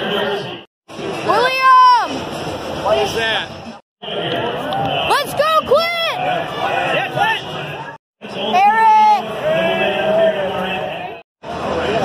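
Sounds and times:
crowd noise: 0:00.0 - 0:12.0
man announcing over loudspeaker: 0:02.8 - 0:11.2.

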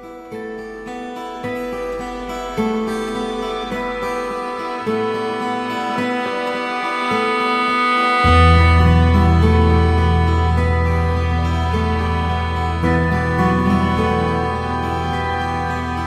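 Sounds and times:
background music: 0:00.0 - 0:16.0
deep bass: 0:08.2 - 0:16.0.

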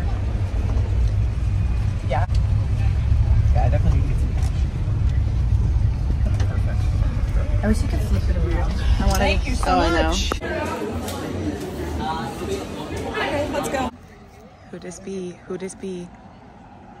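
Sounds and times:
vehicle rumble: 0:00.0 - 0:10.4
faint voices: 0:00.0 - 0:17.0.

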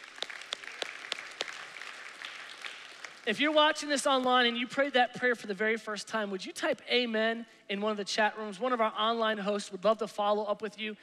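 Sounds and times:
sharp close hand claps: 0:00.0 - 0:03.3
congregation applauding: 0:00.0 - 0:04.3.

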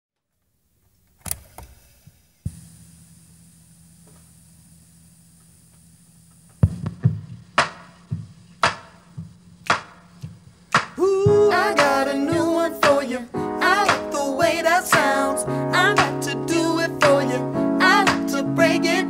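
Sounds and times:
tape hiss and hum: 0:00.2 - 0:19.0
knocks on boombox: 0:06.6 - 0:10.0
drum machine beat: 0:06.6 - 0:16.3, 0:17.0 - 0:18.4.

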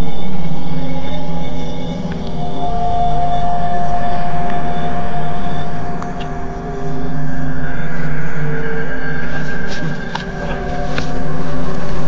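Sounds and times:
dark synthesized drone chords: 0:00.0 - 0:12.0.

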